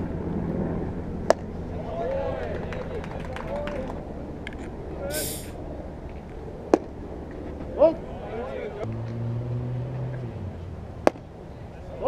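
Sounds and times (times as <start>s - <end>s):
low steady engine hum: 0.0s - 12.0s.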